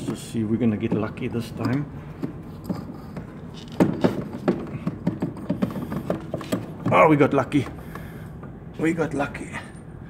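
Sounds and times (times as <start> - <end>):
metal knocks and clicks: 0.0 - 7.8.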